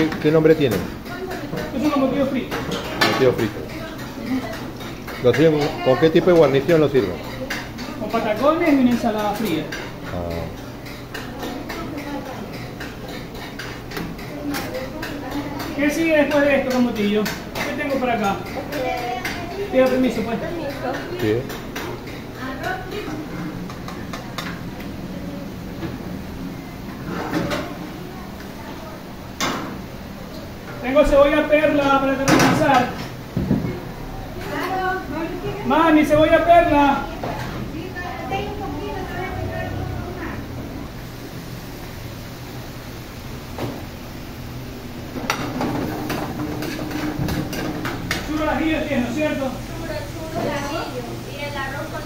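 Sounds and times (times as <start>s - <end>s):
metal pans and utensils clinking: 0.0s - 24.8s, 45.0s - 50.9s
steady background hum: 0.0s - 52.0s.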